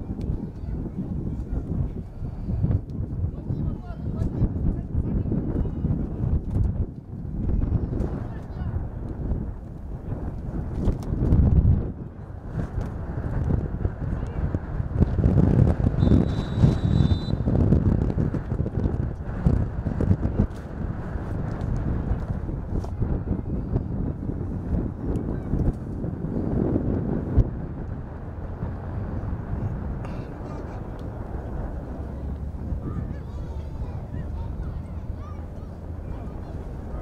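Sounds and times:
wind buffeting microphone: 0.0 - 37.0
referee's whistle: 16.0 - 17.4.

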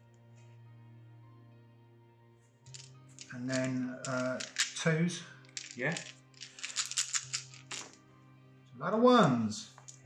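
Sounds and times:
background music: 0.0 - 10.0
dice rattling in hand: 2.7 - 4.8, 5.5 - 8.0
dice clattering on mat: 2.7 - 8.0, 9.8 - 10.0.

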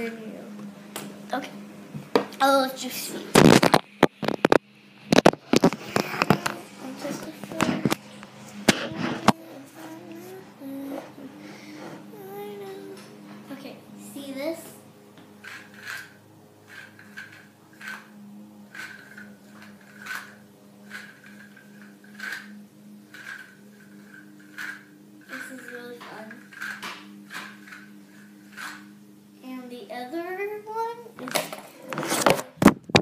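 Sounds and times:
child's voice: 1.3 - 1.6, 2.4 - 3.4, 6.0 - 8.0, 8.7 - 14.8, 25.3 - 26.4, 29.4 - 31.7
yo-yo clicking: 15.2 - 29.0.

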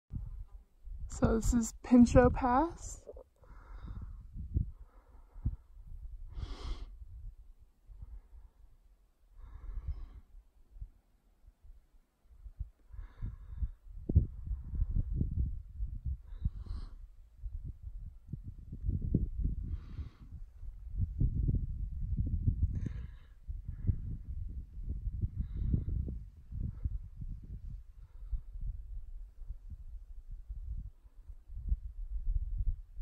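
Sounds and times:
wind buffeting microphone: 0.1 - 8.8, 11.6 - 33.0
person breathing: 3.4 - 7.0, 9.4 - 10.3, 12.9 - 13.8, 16.2 - 17.1, 19.6 - 20.6.

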